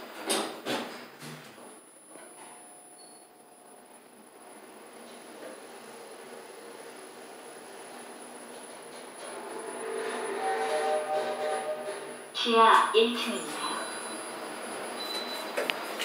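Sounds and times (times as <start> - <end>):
elevator running hum: 0.0 - 16.0.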